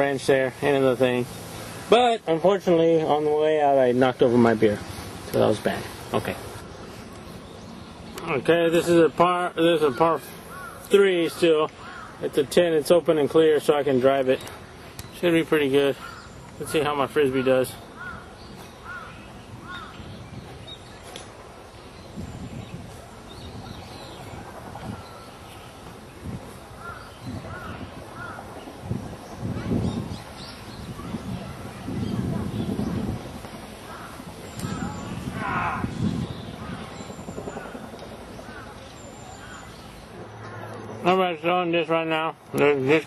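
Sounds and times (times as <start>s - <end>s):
birds calling: 0.0s - 43.0s.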